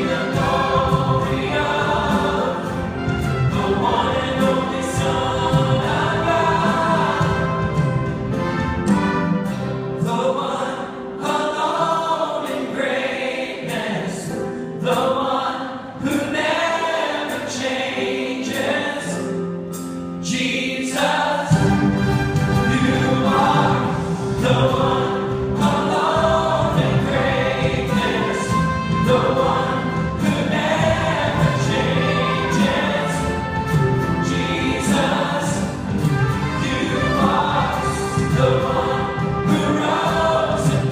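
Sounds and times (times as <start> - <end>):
choir and band performing gospel: 0.0 - 40.9.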